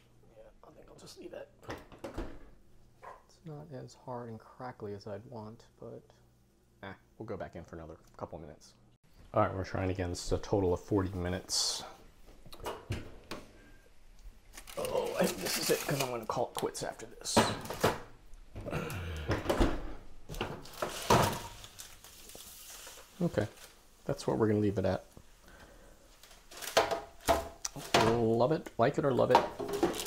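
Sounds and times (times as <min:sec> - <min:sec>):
paper rustling: 0:14.5 - 0:16.3, 0:20.6 - 0:23.8.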